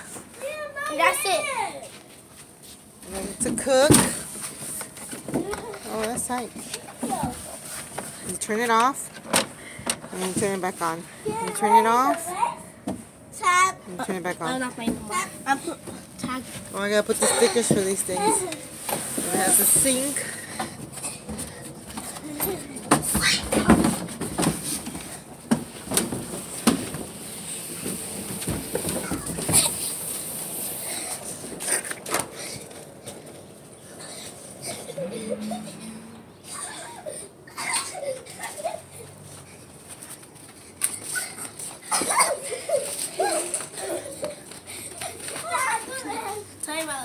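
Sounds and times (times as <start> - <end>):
children's voices: 0.3 - 2.0, 11.2 - 12.8, 41.9 - 47.0.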